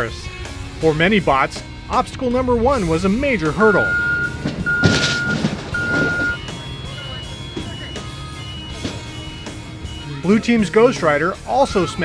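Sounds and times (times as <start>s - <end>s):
vehicle noise: 0.4s - 12.0s
gravel rushing: 2.2s - 9.6s
faint high beeps: 3.7s - 8.8s
electronic warning beeps: 3.7s - 10.0s.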